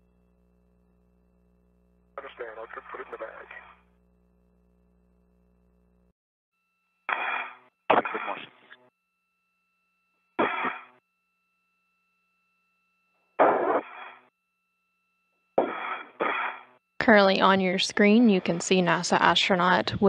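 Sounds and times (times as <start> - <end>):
faint two-pitch tone hum: 0.0 - 20.0
radio voice bursts: 7.1 - 8.7.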